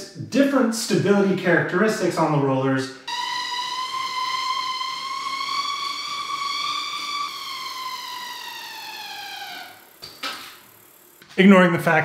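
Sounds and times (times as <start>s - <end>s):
bicycle wheels whining on rollers: 3.1s - 11.4s.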